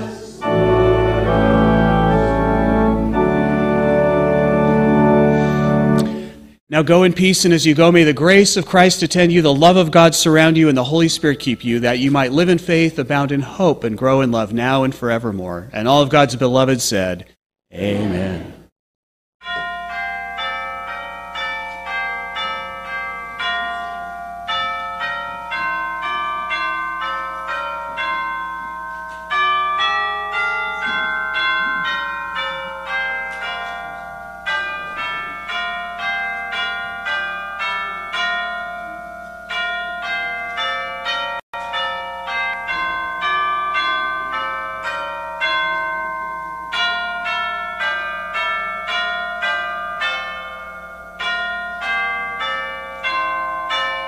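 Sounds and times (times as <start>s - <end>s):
tubular chimes melody: 0.0s - 6.6s.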